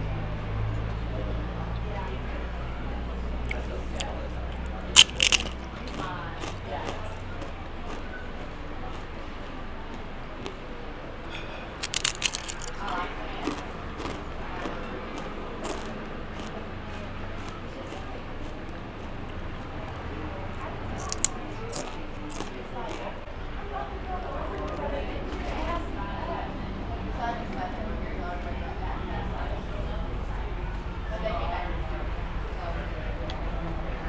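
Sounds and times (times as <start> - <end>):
low background hum: 0.0 - 34.0
chips being crunched and chewed: 3.4 - 8.0, 11.8 - 19.2, 20.6 - 23.1.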